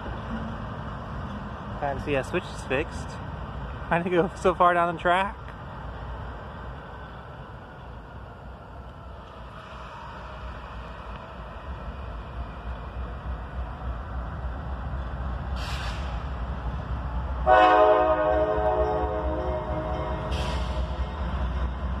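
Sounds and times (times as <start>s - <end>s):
diesel locomotive rumble: 0.0s - 22.0s
train air horn chord: 17.5s - 20.8s.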